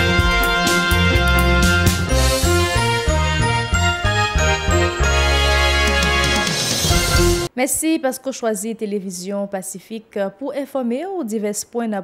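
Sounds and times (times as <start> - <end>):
news theme music: 0.0 - 7.5.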